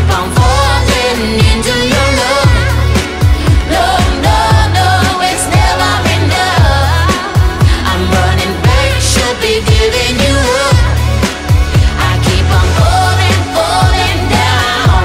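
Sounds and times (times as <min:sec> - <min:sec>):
deep held bass line: 0:00.0 - 0:15.0
person singing: 0:00.0 - 0:15.0.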